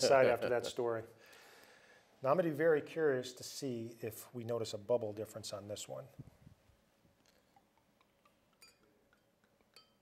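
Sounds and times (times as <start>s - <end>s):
light glass clinks: 8.5s - 10.0s
sparkling wine pouring into glass: 8.5s - 10.0s.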